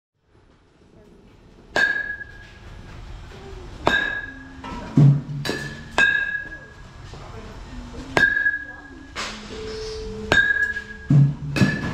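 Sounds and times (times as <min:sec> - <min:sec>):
metal bat hitting ball: 0:01.7 - 0:02.4, 0:03.8 - 0:04.4, 0:05.0 - 0:06.6, 0:08.2 - 0:08.6, 0:10.3 - 0:11.9.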